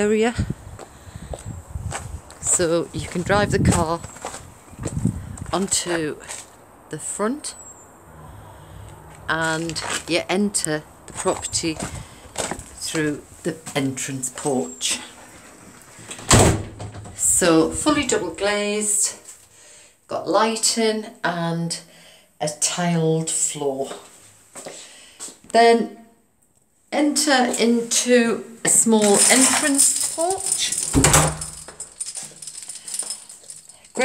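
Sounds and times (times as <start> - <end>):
door thudding shut: 16.2 - 17.2, 30.9 - 31.6
handling rustle: 29.0 - 34.0
metallic jingling: 29.0 - 34.0.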